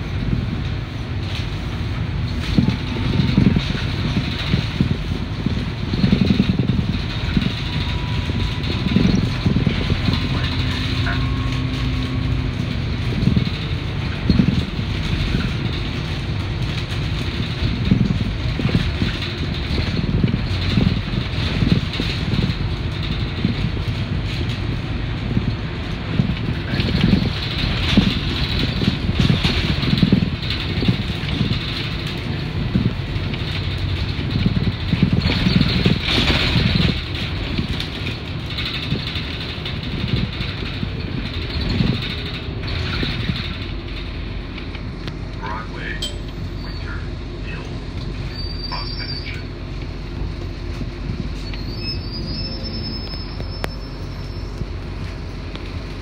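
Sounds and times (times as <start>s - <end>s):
bus body knocks and rattles: 0.0s - 45.6s
bus engine and road rumble: 0.0s - 56.0s.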